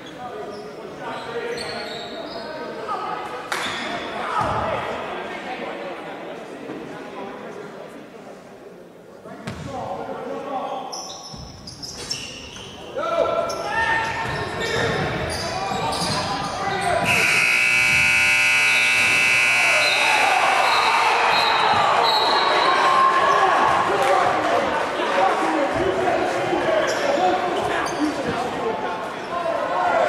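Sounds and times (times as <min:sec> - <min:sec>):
voices echoing: 0:00.0 - 0:30.0
basketball bouncing: 0:17.0 - 0:19.3
scoreboard buzzer: 0:17.0 - 0:20.8.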